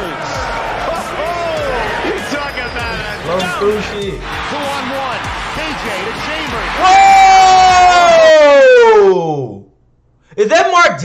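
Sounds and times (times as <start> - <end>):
background noise: 7.8 - 11.0.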